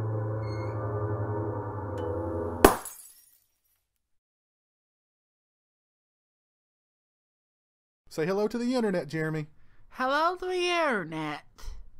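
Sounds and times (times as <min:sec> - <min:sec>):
low droning music: 0:00.0 - 0:02.6
light bulb shattering: 0:02.6 - 0:03.7.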